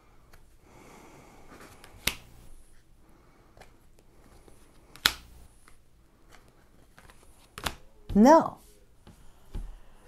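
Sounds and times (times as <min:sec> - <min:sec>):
cards snapping on a table: 0:01.8 - 0:02.4, 0:03.6 - 0:07.8.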